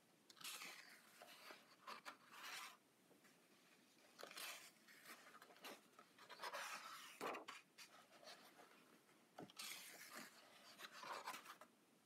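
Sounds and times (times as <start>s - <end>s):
paper pages rustling: 0.3s - 11.7s.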